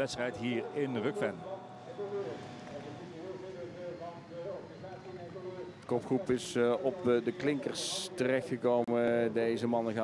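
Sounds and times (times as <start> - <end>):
commentary: 0.0 - 10.0.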